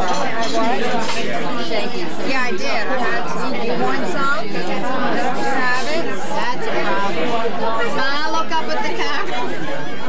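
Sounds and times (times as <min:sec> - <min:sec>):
overlapping voices chatter: 0:00.0 - 0:10.0.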